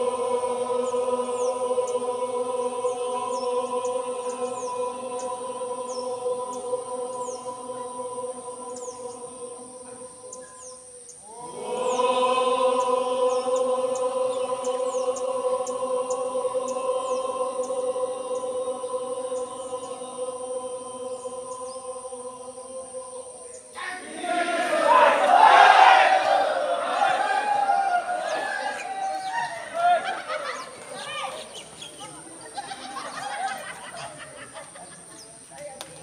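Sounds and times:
crowd chanting prayer: 0.0s - 35.2s.

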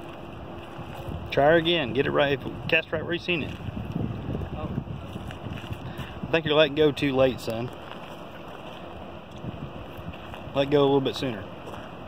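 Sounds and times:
wind on microphone: 0.0s - 10.7s
flowing stream water: 0.0s - 12.0s.

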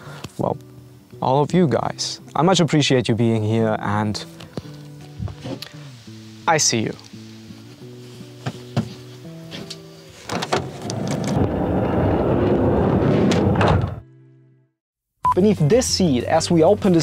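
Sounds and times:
background music: 0.0s - 11.4s, 14.0s - 17.0s
sliding van door closing with thud: 8.4s - 11.6s, 12.4s - 14.0s.

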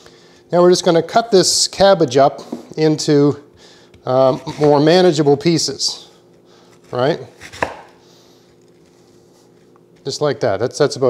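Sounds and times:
knife chopping cabbage: 4.0s - 4.8s, 6.7s - 8.0s.

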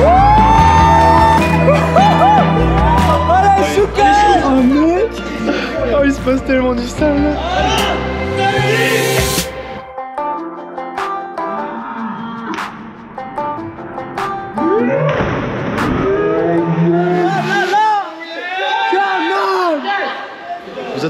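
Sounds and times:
people yelling and cheering: 0.0s - 6.4s, 7.1s - 9.2s, 11.4s - 13.2s, 14.5s - 21.0s
background music: 0.0s - 19.8s
bodies splashing into water: 15.0s - 16.1s.

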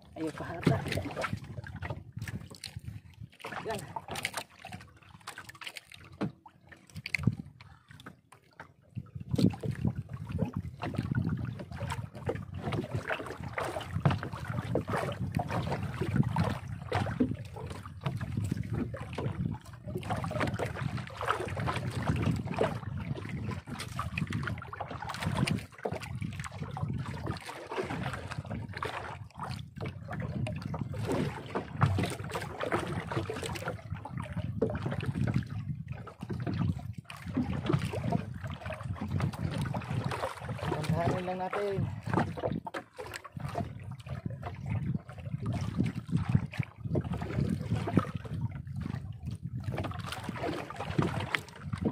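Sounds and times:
wind buffeting microphone: 0.0s - 3.9s, 6.9s - 7.8s, 8.9s - 51.9s
water slapping against boat hull: 0.0s - 51.9s.

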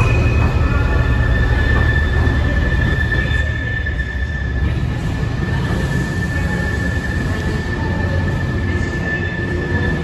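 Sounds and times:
high-pitched wheel squeal: 0.0s - 10.0s
train rumble: 0.0s - 10.0s.

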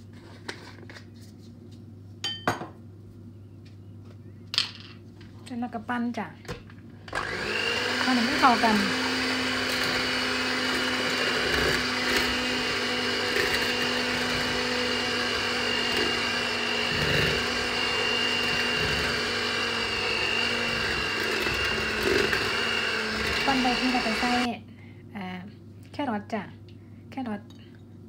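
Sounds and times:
electric hand mixer whine: 7.1s - 24.5s.

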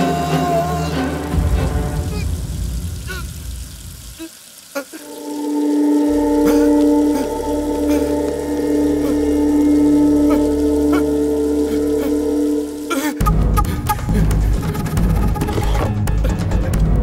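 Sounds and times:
sustained synthesizer chord: 5.0s - 13.4s.

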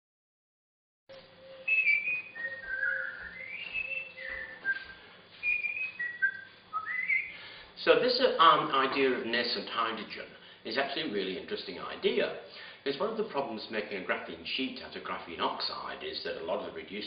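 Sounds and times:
faint steady hum: 1.1s - 17.0s
person whistling a tune: 1.4s - 7.4s.

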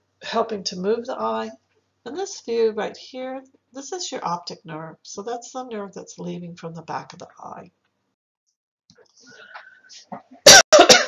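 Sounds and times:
woman coughing: 10.4s - 11.0s.

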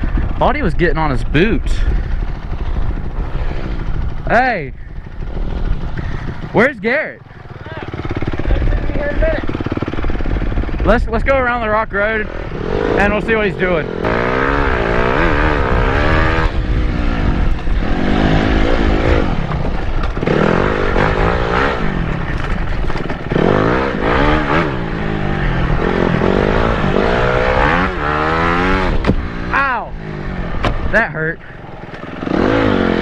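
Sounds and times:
wind noise: 0.0s - 6.6s, 8.2s - 31.1s
dirt bike engine revving: 0.0s - 33.0s.

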